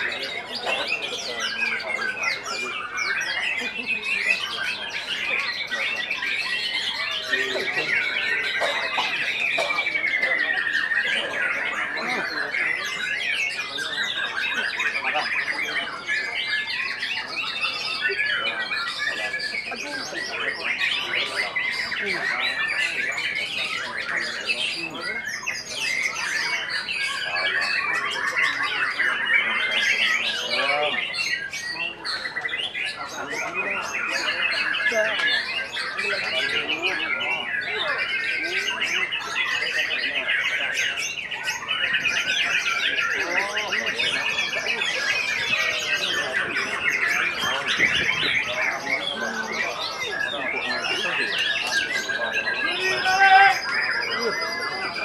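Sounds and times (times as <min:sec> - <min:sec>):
people's voices: 0:00.0 - 0:55.0
songbirds singing trills: 0:00.0 - 0:55.0.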